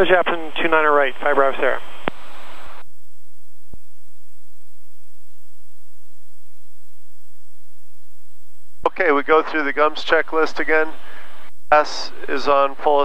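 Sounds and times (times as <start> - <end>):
radio hiss: 0.0 - 2.8, 8.9 - 13.0.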